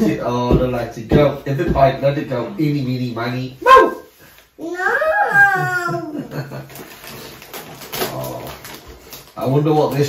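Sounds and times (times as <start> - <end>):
wrapping paper crinkling: 6.4 - 10.0.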